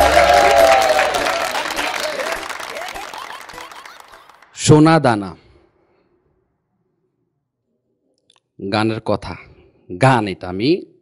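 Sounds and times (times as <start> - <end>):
audience applause: 0.0 - 5.0.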